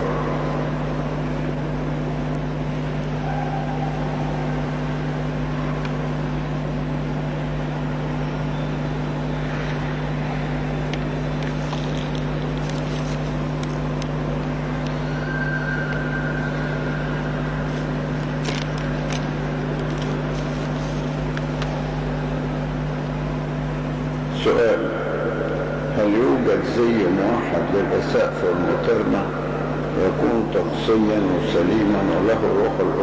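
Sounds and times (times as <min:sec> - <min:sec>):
electrical hum and hiss: 0:00.0 - 0:33.0
paper sheets rustling: 0:11.6 - 0:13.4.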